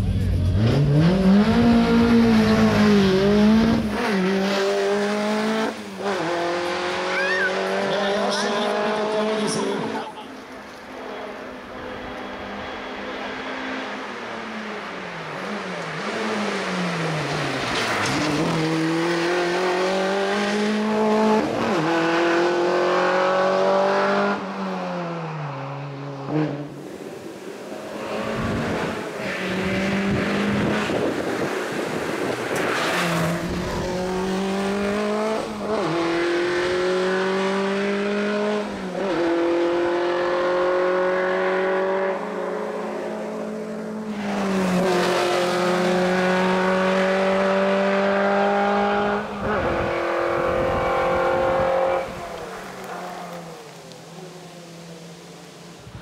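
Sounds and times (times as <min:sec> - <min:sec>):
race car engine at full throttle: 0:00.0 - 0:56.0.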